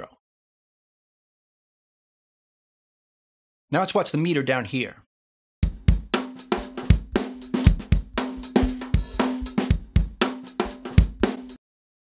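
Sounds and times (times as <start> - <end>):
drum loop with kick and snare: 5.6 - 11.6.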